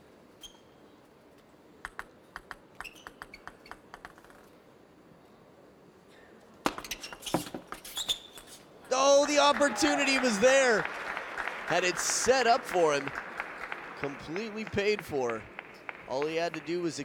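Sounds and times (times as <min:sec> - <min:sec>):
table tennis ball clicks: 0:01.8 - 0:04.5
arena crowd noise: 0:08.9 - 0:17.0.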